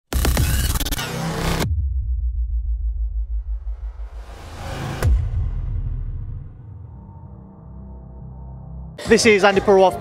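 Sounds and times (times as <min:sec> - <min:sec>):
pulsing bass rumble: 0:01.6 - 0:09.0.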